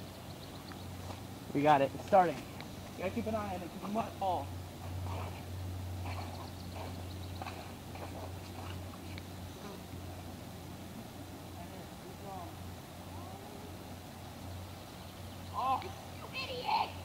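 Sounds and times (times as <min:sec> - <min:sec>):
steady low hum: 0:00.0 - 0:17.0
faint distant voices: 0:01.0 - 0:17.0.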